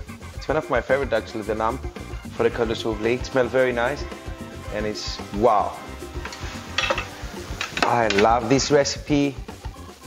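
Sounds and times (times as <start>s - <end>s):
background music with steady beat: 0.0s - 10.0s
metal tongs clinking on tray: 6.2s - 8.5s.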